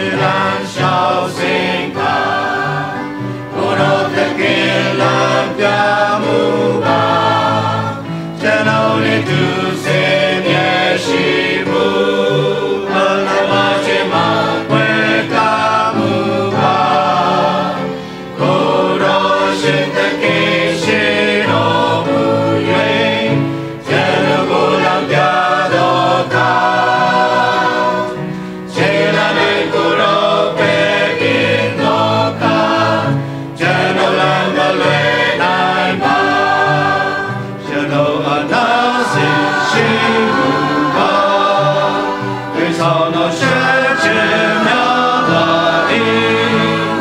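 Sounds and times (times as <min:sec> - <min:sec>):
mixed choir singing: 0:00.0 - 0:47.0.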